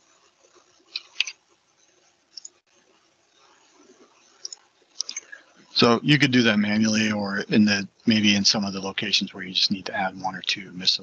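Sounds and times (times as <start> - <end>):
keyboard and mouse clicks: 0.9 - 1.3
man speaking: 5.0 - 11.0.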